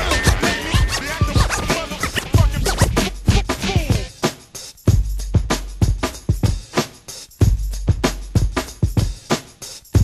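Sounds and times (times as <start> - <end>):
person rapping: 0.0 - 4.1
turntable scratching: 0.0 - 4.2
hip hop beat: 0.0 - 10.0.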